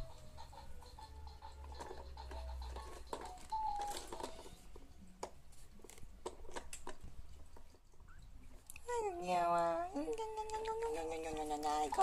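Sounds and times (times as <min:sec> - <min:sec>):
electronic toy beeping melody: 0:00.0 - 0:04.7.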